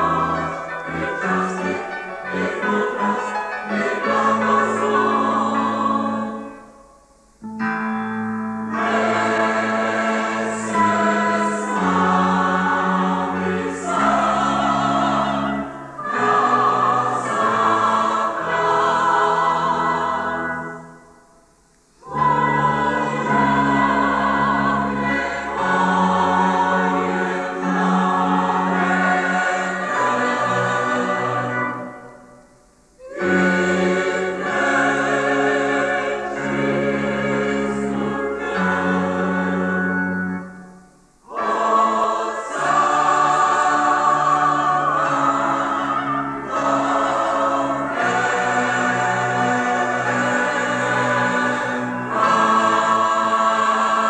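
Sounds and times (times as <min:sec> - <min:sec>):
choir singing a hymn: 0:00.0 - 0:07.4, 0:08.6 - 0:54.0
keyboard accompaniment: 0:00.0 - 0:54.0.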